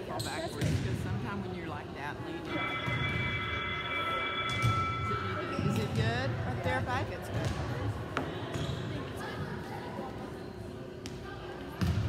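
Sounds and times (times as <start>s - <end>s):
volleyballs bouncing on gym floor: 0.6s - 1.1s, 11.0s - 12.0s
steady high tone: 2.3s - 6.7s.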